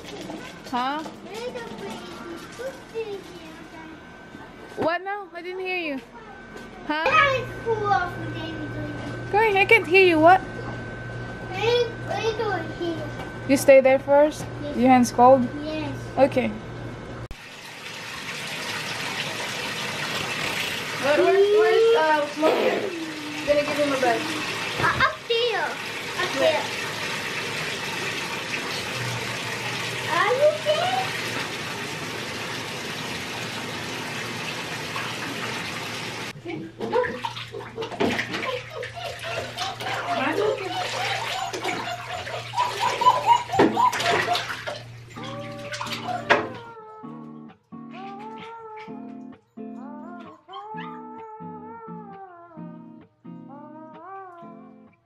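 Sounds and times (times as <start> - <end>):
water running from bathtub tap: 17.3 - 46.6
water splashing: 22.3 - 46.5
voices: 38.6 - 44.2
soft guitar music: 44.9 - 55.0.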